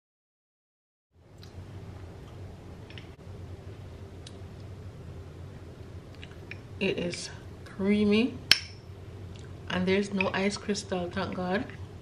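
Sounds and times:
steady low hum: 0:01.2 - 0:12.0.

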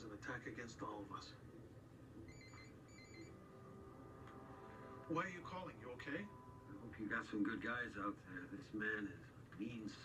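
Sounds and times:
mobile phone ringing: 0:02.3 - 0:03.5.

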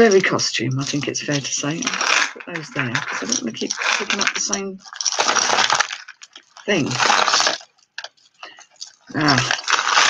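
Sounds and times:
bead necklaces clattering: 0:00.0 - 0:10.0.

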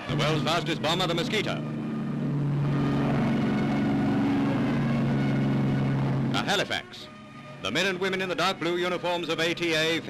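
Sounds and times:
piston aircraft engines droning: 0:00.0 - 0:10.0.

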